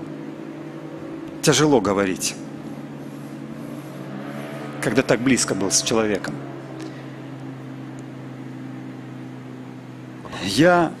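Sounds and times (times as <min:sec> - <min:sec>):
low hum of held tones: 0:00.0 - 0:11.0
man speaking over loudspeaker: 0:04.8 - 0:06.4.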